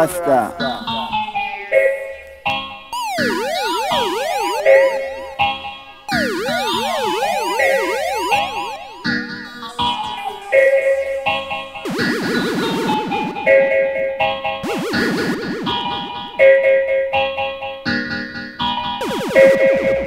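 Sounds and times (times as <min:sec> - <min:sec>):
dub siren pitch sweeps with echo: 0:03.0 - 0:09.5, 0:19.0 - 0:20.0
stepped siren tones: 0:03.0 - 0:10.4, 0:11.8 - 0:13.6, 0:14.6 - 0:16.5, 0:19.0 - 0:20.0.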